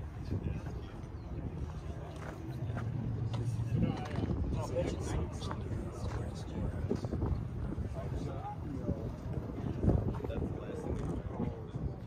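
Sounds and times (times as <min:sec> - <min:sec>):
background chatter of people: 0:00.0 - 0:12.0
wind rumbling on microphone: 0:00.0 - 0:12.0.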